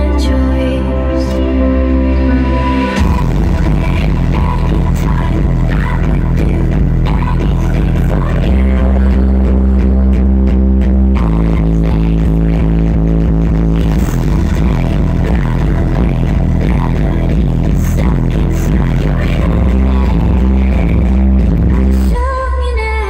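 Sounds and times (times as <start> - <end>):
loud electronic music with heavy bass: 0.0 - 23.0.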